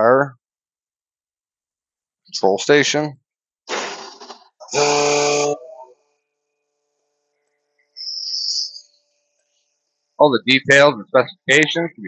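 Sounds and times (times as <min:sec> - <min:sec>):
short hiss: 0:03.7 - 0:04.4
warning buzzer: 0:04.7 - 0:05.7.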